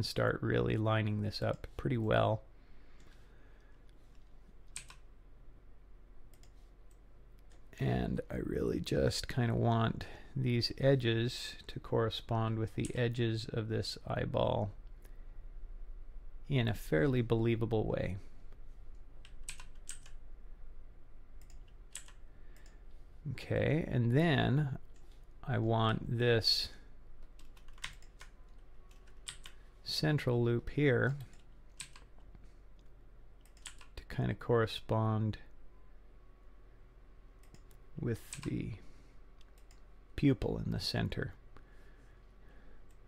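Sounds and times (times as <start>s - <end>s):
faint low hum: 0.0s - 43.0s
keyboard and mouse clicks: 4.2s - 5.1s, 6.3s - 7.6s, 21.4s - 22.8s.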